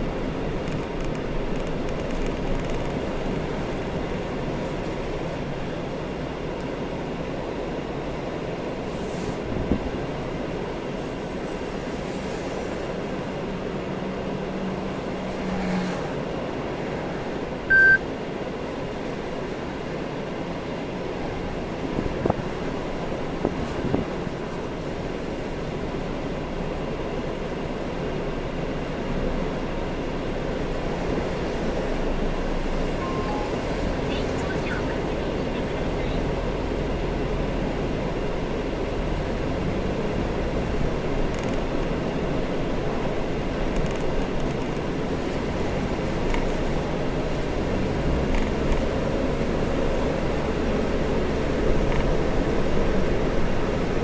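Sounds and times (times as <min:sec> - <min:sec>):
car engine and tyre rumble: 0:00.0 - 0:54.0
short electronic beep: 0:17.7 - 0:18.0, 0:33.0 - 0:35.3.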